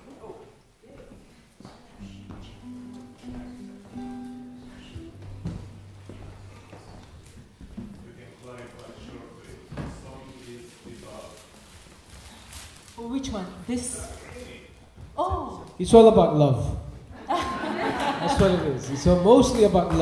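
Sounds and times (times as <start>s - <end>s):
held instrument notes: 2.0s - 7.4s.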